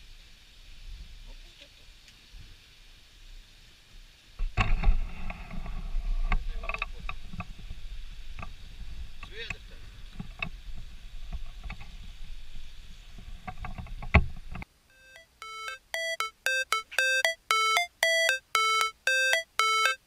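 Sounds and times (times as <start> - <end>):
electronic music: 15.0 - 20.0.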